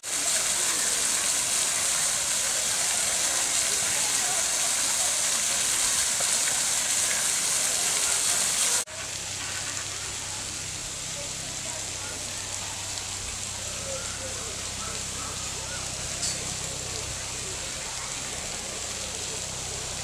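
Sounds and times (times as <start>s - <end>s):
waterfall splashing into pond: 0.0s - 20.0s.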